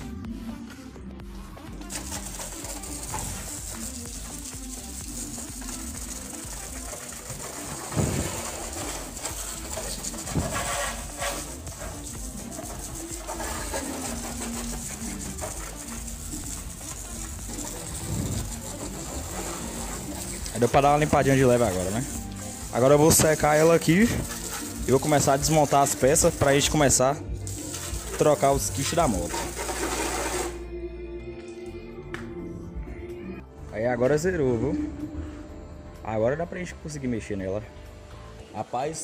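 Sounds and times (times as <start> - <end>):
garden hose spraying water: 1.8 - 30.6.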